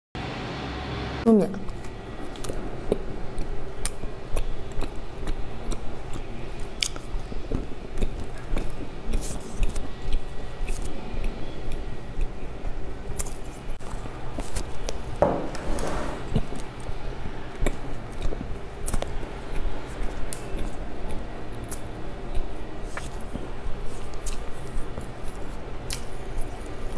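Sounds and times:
chewing and biting soft bun: 0:01.7 - 0:15.2, 0:16.3 - 0:26.9
wet mouth clicks and smacks: 0:02.4 - 0:10.9.

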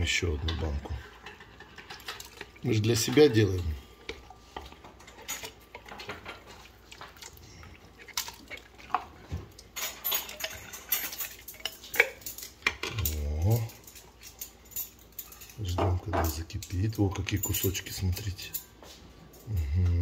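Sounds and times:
spoon stirring in pot: 0:00.0 - 0:19.0.

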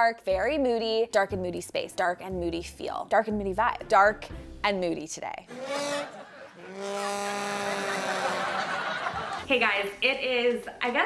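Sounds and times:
sad trombone sound effect: 0:05.5 - 0:08.6.

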